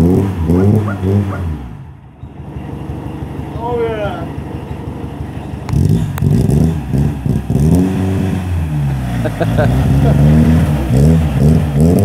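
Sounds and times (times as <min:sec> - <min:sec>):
car engine idling roughly and revving: 0:00.0 - 0:12.0.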